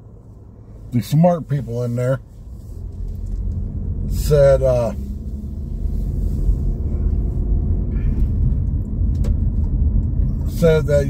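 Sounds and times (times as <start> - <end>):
car interior road rumble: 0.0 - 11.0.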